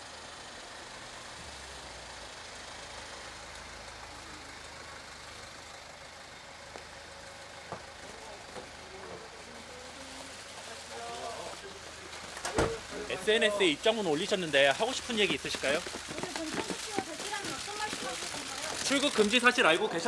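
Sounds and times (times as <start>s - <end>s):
car engine idling: 0.0s - 20.0s
outdoor background noise: 0.0s - 20.0s.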